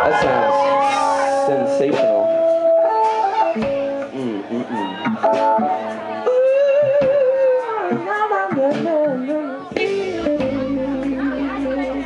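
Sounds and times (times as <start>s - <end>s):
keyboard: 0.0s - 12.0s.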